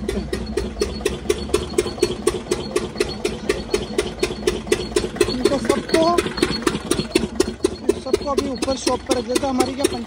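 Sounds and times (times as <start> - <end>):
engine running with regular knock: 0.0 - 10.0.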